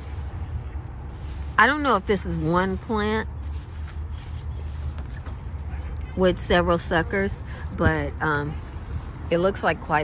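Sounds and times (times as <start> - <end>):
plant leaves rustling: 0.0 - 10.0.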